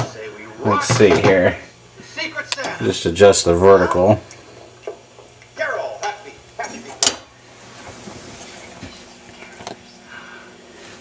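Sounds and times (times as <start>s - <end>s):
faint tv programme sound: 0.0s - 4.1s, 5.6s - 7.3s.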